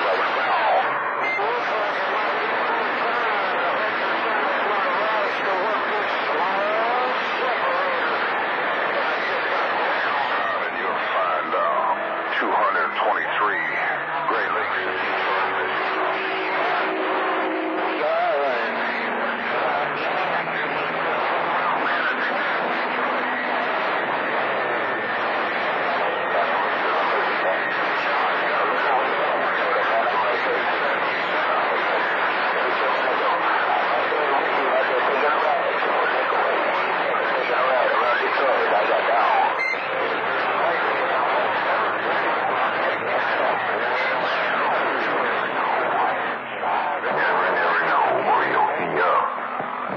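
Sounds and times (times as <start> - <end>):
radio static hiss: 0.0 - 49.9
unintelligible radio voices: 0.0 - 49.9.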